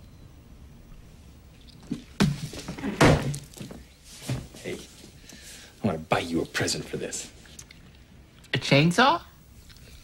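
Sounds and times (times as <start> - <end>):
plastic bottle thunking on floor: 2.2 - 3.8.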